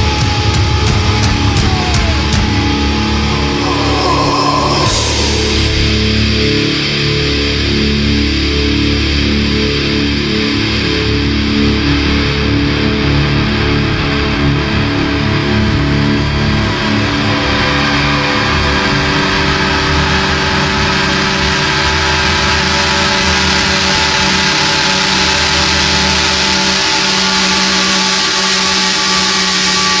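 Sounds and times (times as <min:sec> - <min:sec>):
held drone tones: 0:00.0 - 0:08.2
distorted electric guitar feedback: 0:00.0 - 0:30.0.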